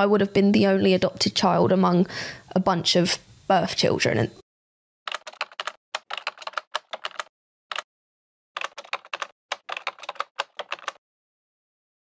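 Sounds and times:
keyboard typing clicks: 5.1s - 7.8s, 8.6s - 11.0s.

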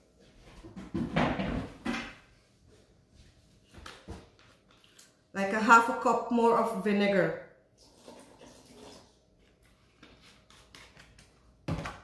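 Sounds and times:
liquid pouring into a metal bowl: 7.8s - 9.2s.

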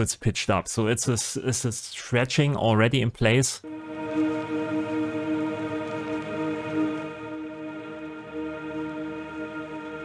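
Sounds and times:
sustained drone chord: 3.6s - 10.0s.

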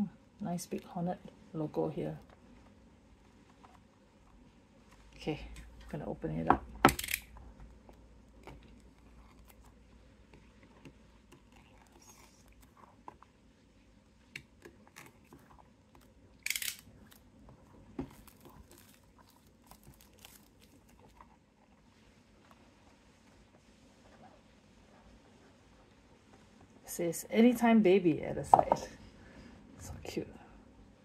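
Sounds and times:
scratching and handling of box: 17.0s - 25.3s.

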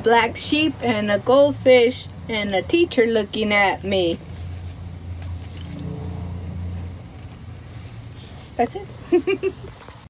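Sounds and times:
low motor hum: 1.6s - 9.7s.

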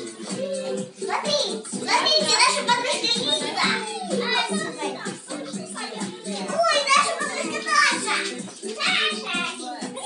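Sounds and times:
background music: 0.0s - 10.0s
young children chattering: 1.9s - 10.0s.

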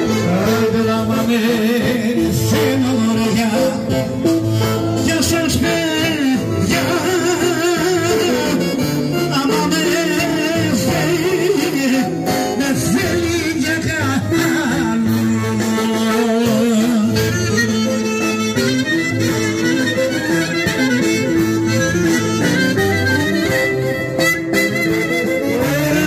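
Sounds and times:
folk dance music over loudspeakers: 0.0s - 26.0s.

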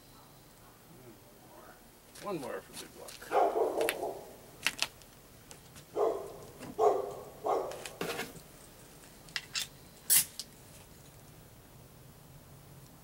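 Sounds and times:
dog barking: 3.3s - 4.3s, 5.9s - 8.0s
short sharp hisses: 10.1s - 10.4s.

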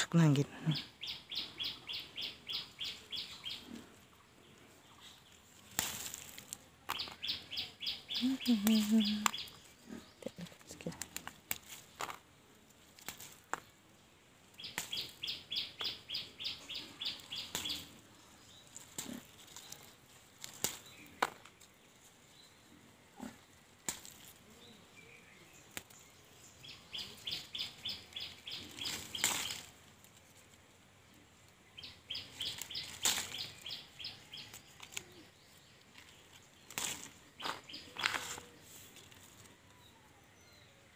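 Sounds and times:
leaves rustling: 0.0s - 39.9s
bird chirping: 0.2s - 5.5s, 6.9s - 10.9s, 14.6s - 19.9s, 24.5s - 29.7s, 31.6s - 39.0s.

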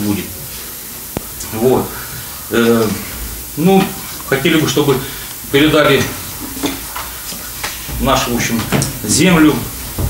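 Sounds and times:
steady recording hiss: 0.0s - 10.0s.

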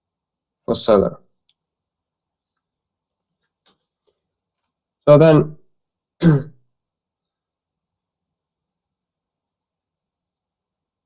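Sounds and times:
man speaking: 0.6s - 1.3s, 5.0s - 5.6s.

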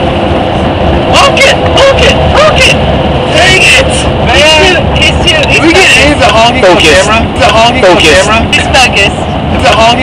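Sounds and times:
van road and engine drone: 0.0s - 10.0s
people talking and calling out: 0.9s - 10.0s.

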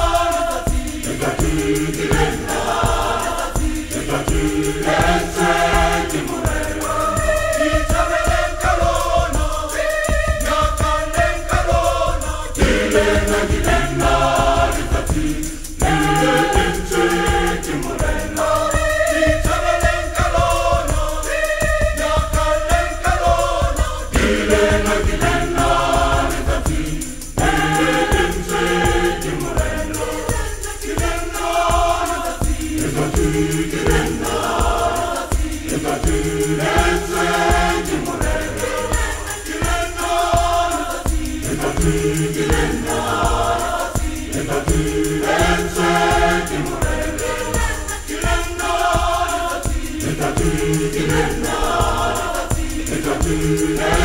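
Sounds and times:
mixed choir singing gospel: 0.0s - 54.0s.

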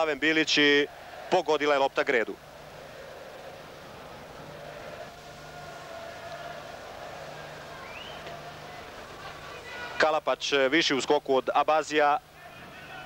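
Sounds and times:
faint hum: 0.0s - 13.0s
faint stadium ambience: 0.0s - 13.0s.

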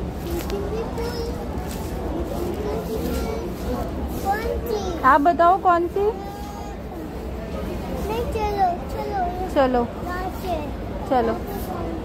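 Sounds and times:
indistinct background voices: 0.0s - 12.0s
low rumble of store noise: 0.0s - 12.0s.

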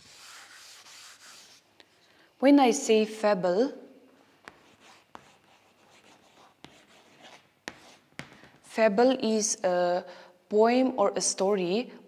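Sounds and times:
chalk scratching on chalkboard: 0.0s - 1.6s, 4.5s - 8.3s.

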